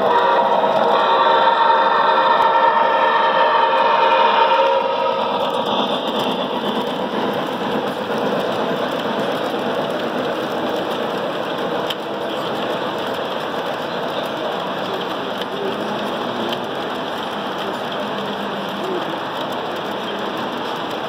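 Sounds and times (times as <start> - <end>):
freight cars rolling on track: 0.0 - 21.0
model locomotive hum: 0.0 - 21.0.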